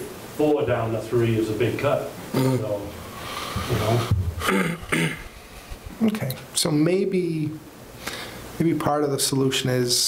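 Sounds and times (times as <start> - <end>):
person clearing throat: 2.3 - 2.8, 3.8 - 5.3.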